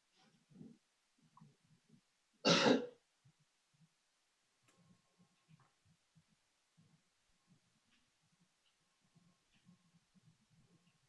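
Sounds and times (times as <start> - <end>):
person clearing throat: 2.4 - 3.0.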